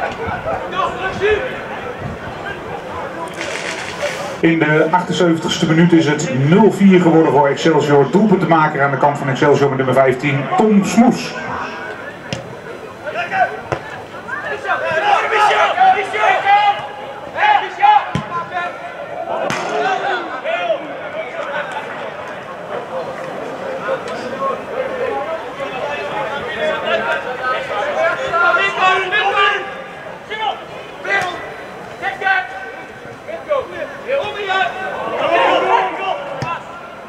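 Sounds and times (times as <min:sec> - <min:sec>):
players shouting: 0:00.0 - 0:37.0.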